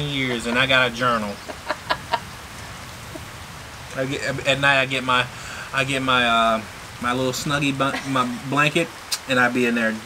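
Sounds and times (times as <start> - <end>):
steady rain falling: 0.0 - 10.0
burst of laughter: 0.4 - 2.4.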